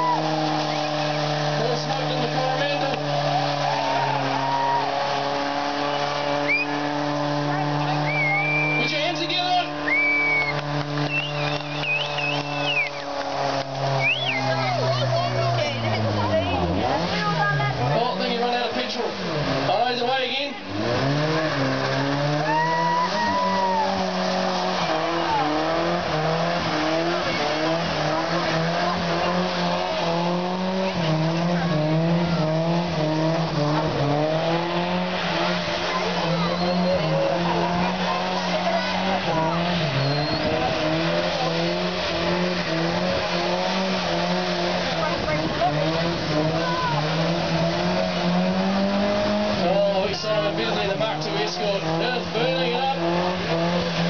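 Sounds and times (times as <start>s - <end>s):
tyres squealing: 0.0s - 17.6s, 20.4s - 34.7s, 35.4s - 42.0s
car engine revving high: 0.0s - 54.0s.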